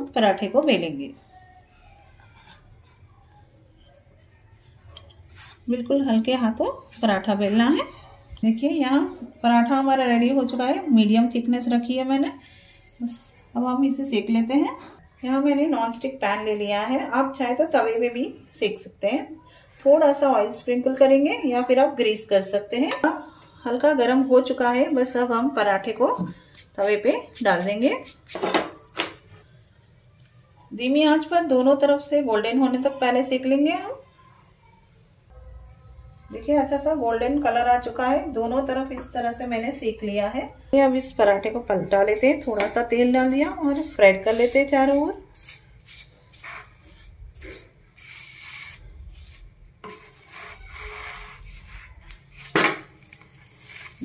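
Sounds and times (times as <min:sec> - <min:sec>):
soft scrape on pan: 0:02.2 - 0:06.0, 0:43.2 - 0:52.5.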